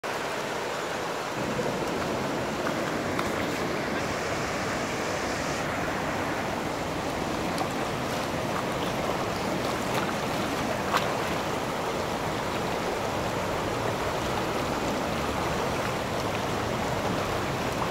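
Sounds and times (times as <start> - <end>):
floodwater rushing: 0.0 - 17.9.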